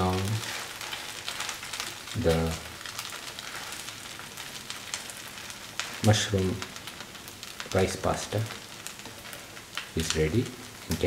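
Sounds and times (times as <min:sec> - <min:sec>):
food sizzling in a pan: 0:00.0 - 0:11.0.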